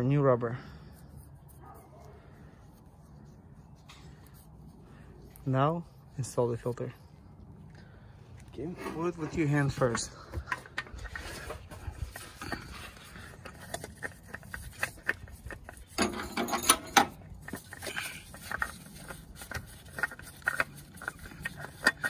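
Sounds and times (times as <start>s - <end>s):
oil filter clicks and scrapes: 0.8s - 22.0s
rustling scrape: 8.6s - 22.0s.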